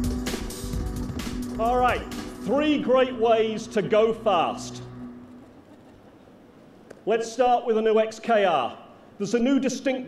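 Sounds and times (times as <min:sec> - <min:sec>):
music and voice: 0:01.4 - 0:05.0.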